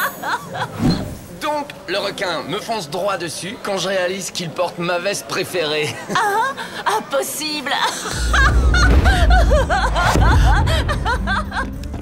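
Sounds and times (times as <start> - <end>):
woman laughing heartily: 7.8 - 11.9
low background music: 8.1 - 12.0.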